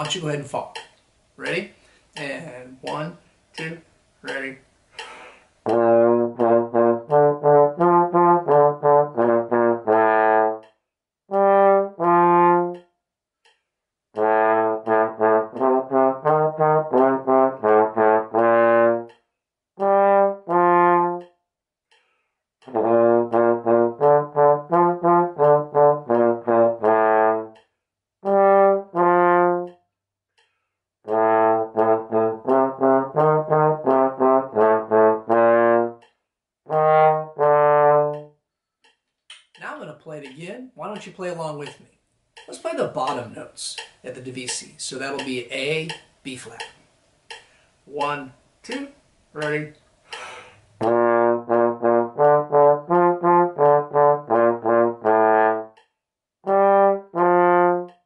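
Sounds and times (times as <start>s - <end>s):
slide trombone folk tune: 5.6s - 10.7s, 11.3s - 12.8s, 14.2s - 19.2s, 19.8s - 21.3s, 22.6s - 27.6s, 28.2s - 29.8s, 31.1s - 38.3s, 50.8s - 55.8s, 56.4s - 58.0s.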